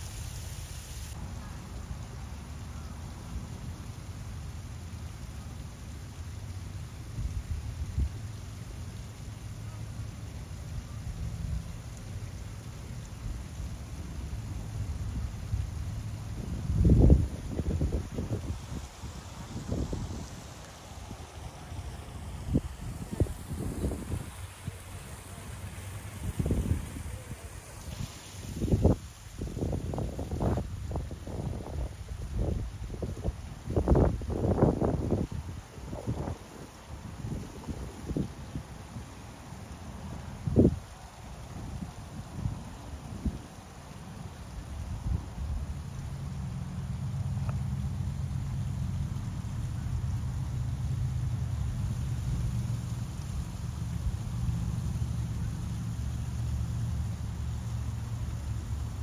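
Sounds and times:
wind buffeting microphone: 15.0s - 38.7s.

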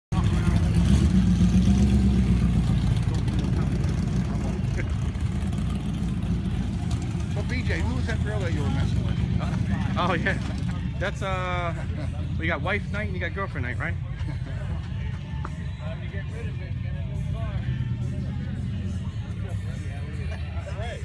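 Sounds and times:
car engine idling: 0.1s - 21.0s
people talking: 2.7s - 5.0s, 7.3s - 14.8s, 19.3s - 21.0s.

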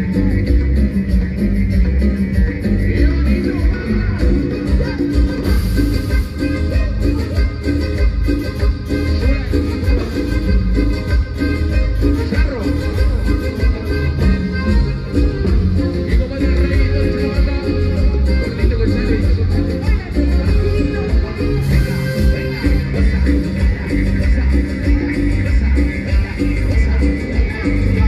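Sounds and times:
band playing cumbia live: 0.0s - 28.0s
heavy bass beat: 0.0s - 28.0s.

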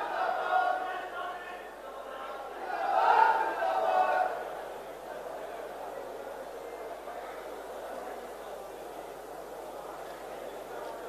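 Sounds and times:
large hall background hiss: 0.0s - 11.0s.

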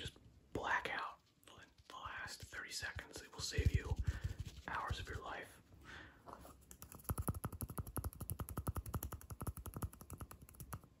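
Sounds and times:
fingertips tapping plastic cup: 6.8s - 10.8s.

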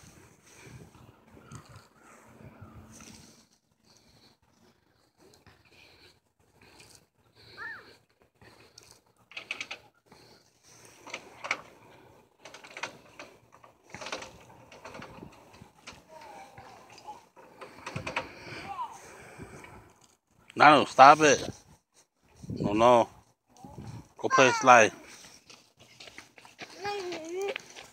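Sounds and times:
footsteps on wood-chip mulch: 25.0s - 27.9s.

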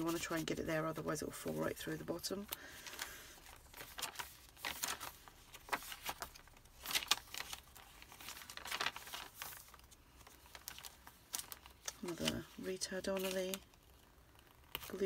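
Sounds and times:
paper pages rustling: 0.0s - 15.0s.

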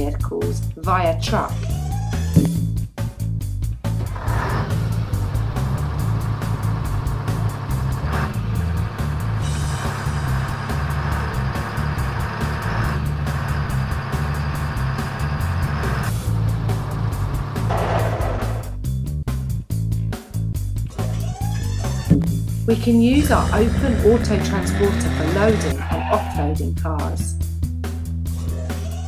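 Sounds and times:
background music: 0.0s - 29.0s
cartoon truck engine: 3.8s - 18.8s, 20.9s - 27.2s.

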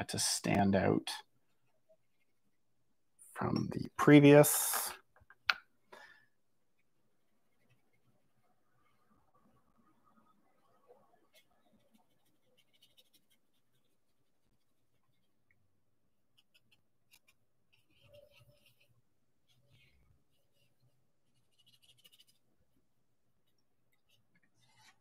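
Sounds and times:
paintbrush scratching on paper: 11.2s - 25.0s.

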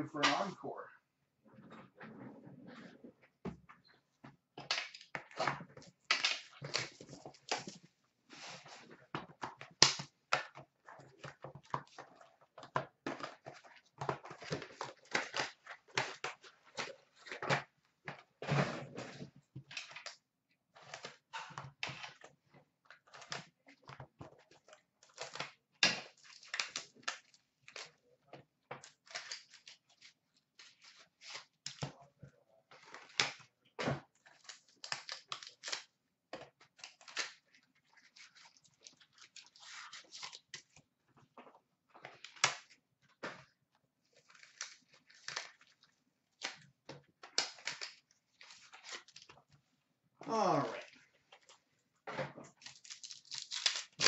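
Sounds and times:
card packaging rustling and tearing: 28.9s - 31.8s, 34.2s - 36.0s, 36.6s - 40.8s, 43.4s - 49.4s, 52.5s - 54.0s.

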